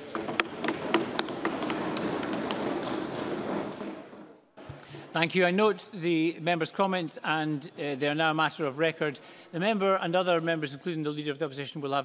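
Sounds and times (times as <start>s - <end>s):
applause: 0.0s - 4.4s.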